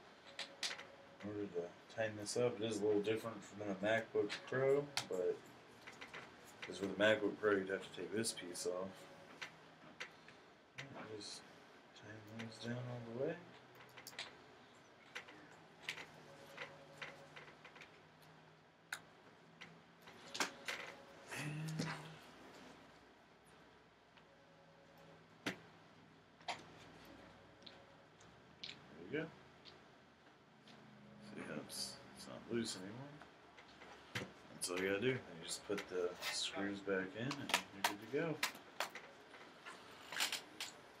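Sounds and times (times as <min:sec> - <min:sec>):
soft handling clicks and rustles: 0:13.5 - 0:18.4.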